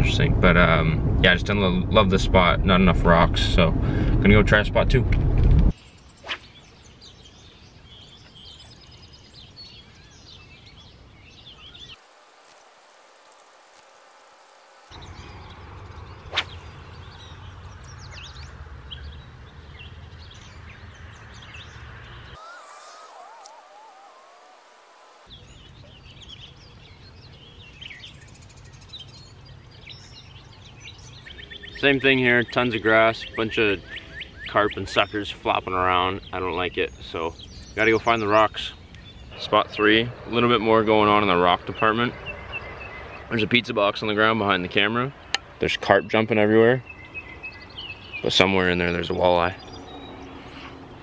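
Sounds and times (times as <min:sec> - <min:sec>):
small birds chirping: 0:05.7 - 0:51.0.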